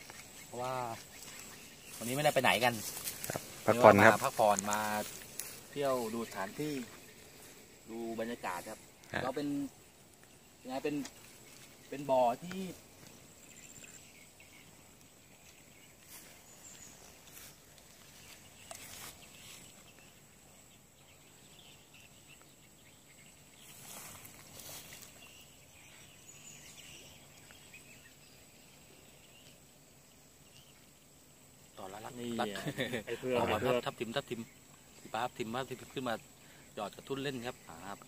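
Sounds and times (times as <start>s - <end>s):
steady low hiss: 0.0s - 38.0s.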